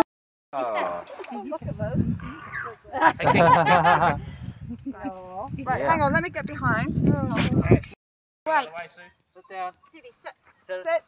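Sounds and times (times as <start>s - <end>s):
people chattering: 0.6s - 2.0s
dogs yelping: 2.2s - 2.8s.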